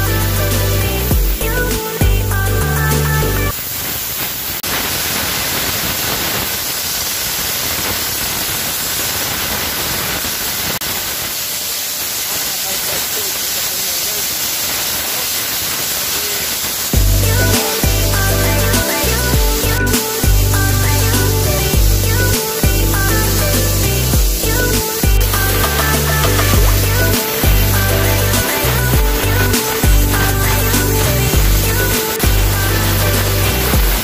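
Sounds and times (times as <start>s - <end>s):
electronic dance music: 0.0s - 3.5s, 17.0s - 34.0s
steam jet hissing: 0.0s - 34.0s.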